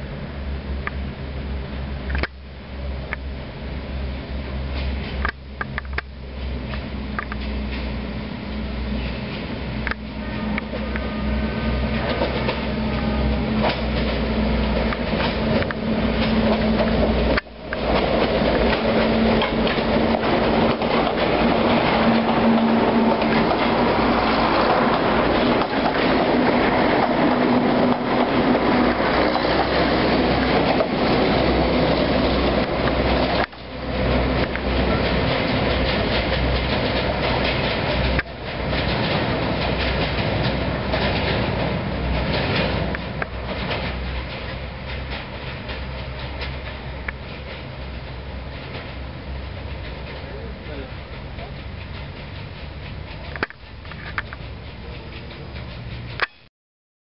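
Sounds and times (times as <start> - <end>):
railcars passing: 0.0 - 56.4
wheels clattering on rails: 4.1 - 56.5.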